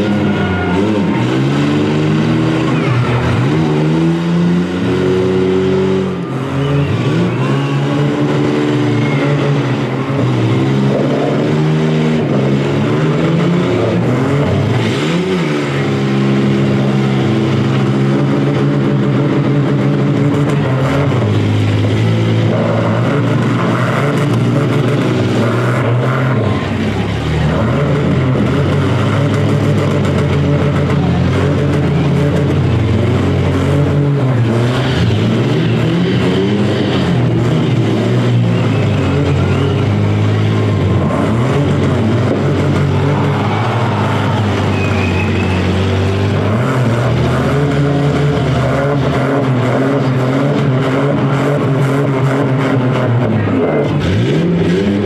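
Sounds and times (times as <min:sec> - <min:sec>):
engines at high revs: 0:00.0 - 0:55.0.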